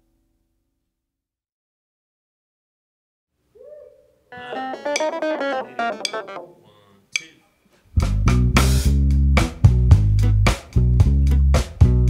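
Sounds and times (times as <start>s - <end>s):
plucked guitar notes: 4.3s - 7.3s
bass guitar: 4.4s - 6.6s, 7.9s - 12.0s
drums beat: 4.4s - 7.4s, 8.0s - 12.0s.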